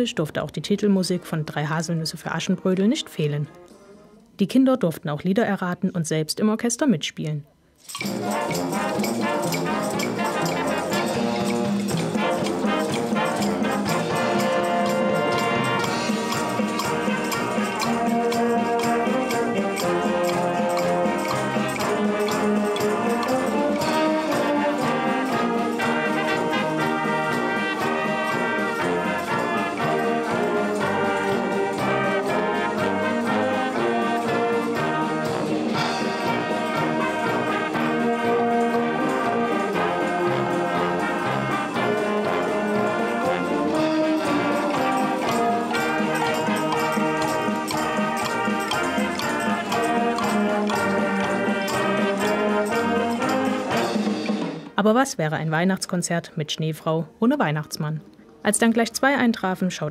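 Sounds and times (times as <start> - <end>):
wood blocks and shakers: 7.8 - 54.5
wind band with brass: 7.9 - 54.8.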